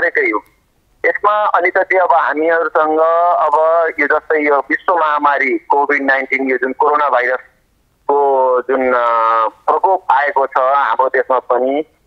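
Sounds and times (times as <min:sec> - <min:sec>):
person talking over telephone: 0:00.0 - 0:00.4, 0:01.0 - 0:07.5, 0:08.1 - 0:12.0.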